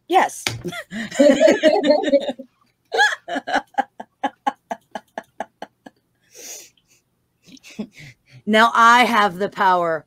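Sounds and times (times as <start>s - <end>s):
woman laughing: 0.6s - 6.0s.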